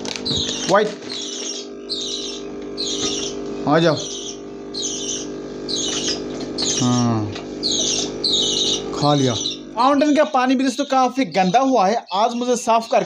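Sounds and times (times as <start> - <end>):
aquarium equipment hum: 0.0 - 13.0
bird raspy high chirp: 0.3 - 13.0.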